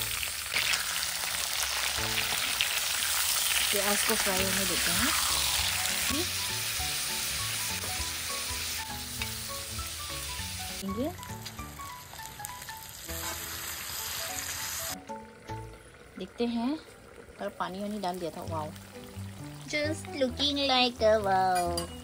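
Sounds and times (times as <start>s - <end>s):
meat and onions sizzling in oil: 0.0s - 22.0s.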